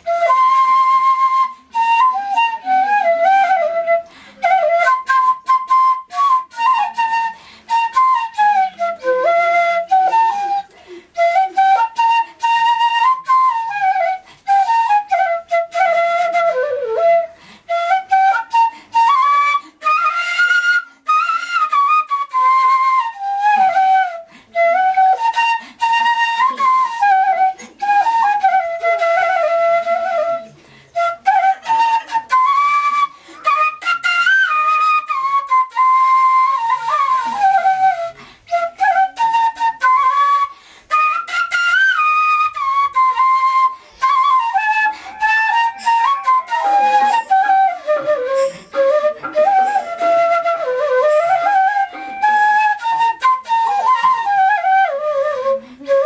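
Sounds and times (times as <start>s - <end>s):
bamboo flute melody: 0.0s - 56.0s.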